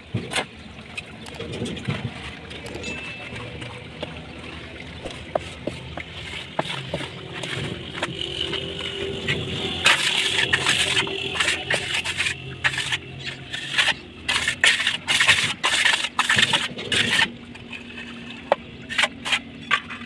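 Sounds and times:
trowel scraping wet cement: 0:05.0 - 0:20.0.

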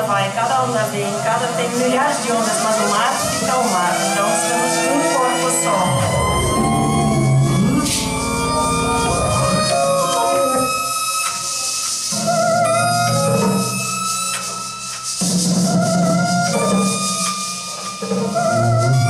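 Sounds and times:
drums and hand percussion: 0:00.0 - 0:19.0
live band with held notes: 0:03.2 - 0:19.0.

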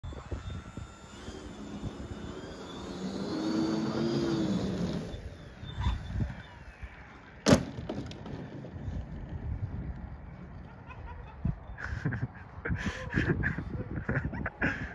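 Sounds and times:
model aircraft electric motor whine: 0:00.0 - 0:06.5
wind buffeting microphone: 0:08.1 - 0:14.9.

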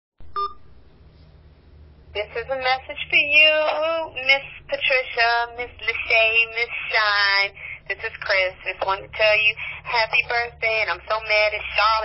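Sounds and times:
short electronic beep: 0:00.2 - 0:00.7
low phone line hum: 0:00.2 - 0:12.0.

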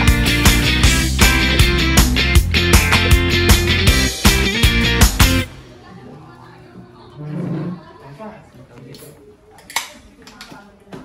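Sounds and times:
chatter around dining table: 0:05.5 - 0:11.0.

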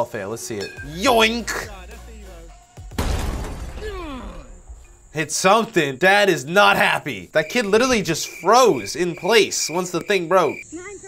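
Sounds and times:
object shattering with a crash: 0:02.9 - 0:04.2
man crying out: 0:03.8 - 0:04.6.

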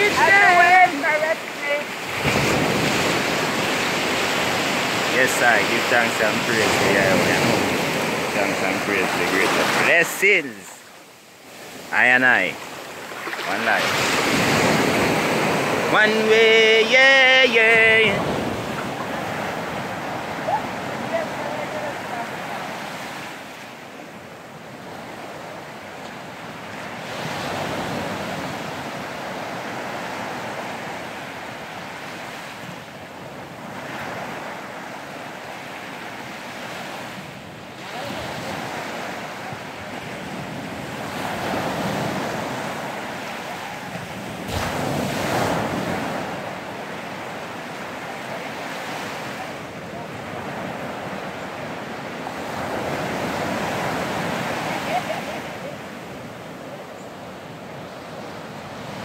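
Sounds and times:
small waves breaking on shore: 0:00.0 - 0:59.0.

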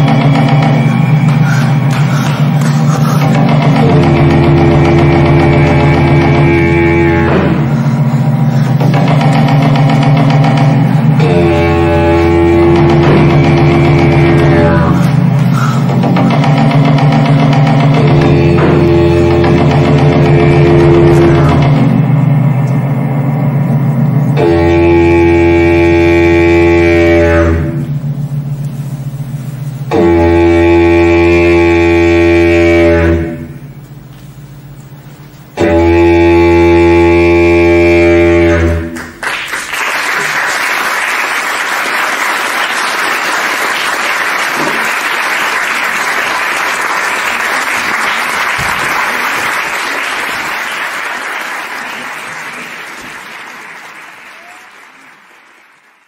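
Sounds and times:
audience applause: 0:00.0 - 0:06.6, 0:39.0 - 0:56.0
loud held stage music chords: 0:00.0 - 0:55.7.

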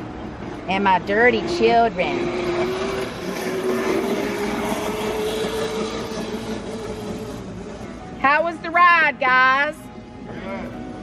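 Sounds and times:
small motorbike engine running: 0:01.3 - 0:08.2.

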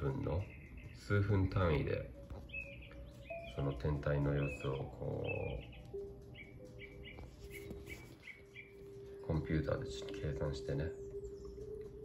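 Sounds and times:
bird chirping: 0:00.0 - 0:12.0.

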